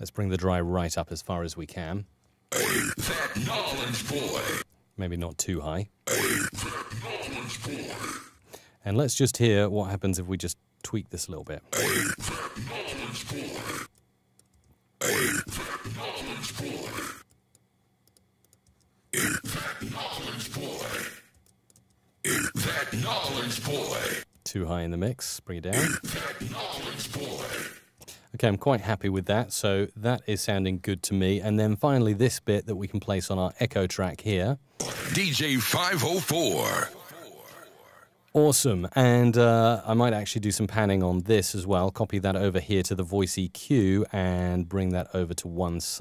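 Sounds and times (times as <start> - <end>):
person speaking: 1.2 - 8.2, 9.0 - 13.9, 15.0 - 17.2, 19.2 - 21.3, 22.3 - 30.8, 34.8 - 40.0
gritty synthesized vocal layers: 2.5 - 4.6, 6.1 - 8.4, 11.8 - 13.9, 15.0 - 17.2, 19.2 - 21.3, 22.3 - 24.2, 25.8 - 27.9, 34.8 - 38.0.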